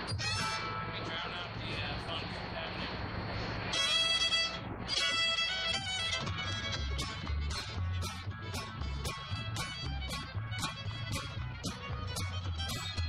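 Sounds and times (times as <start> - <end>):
fiddle melody: 0.0 - 1.6, 3.7 - 13.0
strummed acoustic guitars: 0.0 - 1.9, 3.4 - 13.0
plucked upright bass: 4.9 - 13.0.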